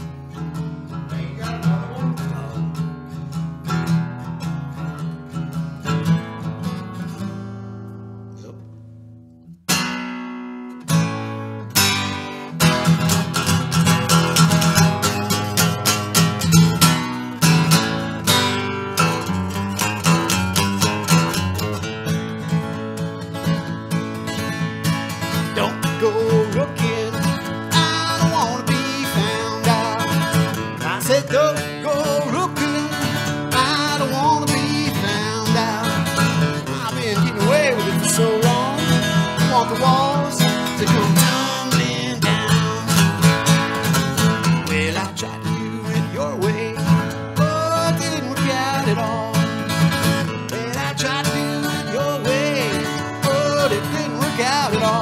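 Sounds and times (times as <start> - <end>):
acoustic guitar blues: 0.0 - 55.0.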